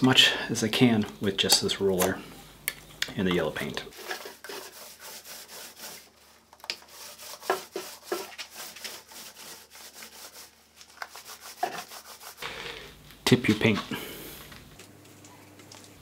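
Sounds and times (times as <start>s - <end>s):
paint roller rolling on wood: 3.9s - 12.9s.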